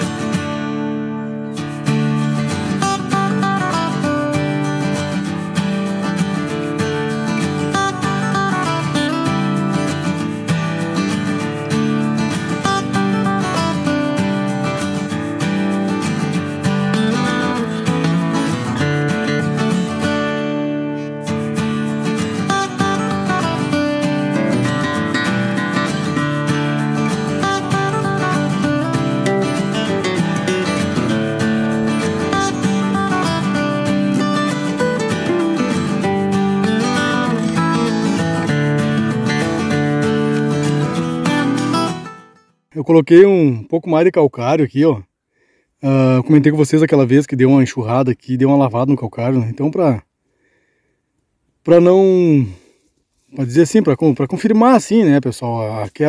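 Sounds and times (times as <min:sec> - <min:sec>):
strummed acoustic guitar music: 0:00.0 - 0:43.5.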